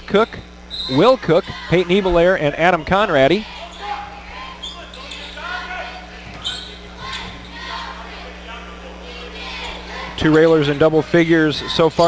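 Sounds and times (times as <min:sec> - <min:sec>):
steady low hum: 0:00.0 - 0:12.0
crowd voices: 0:00.3 - 0:12.0.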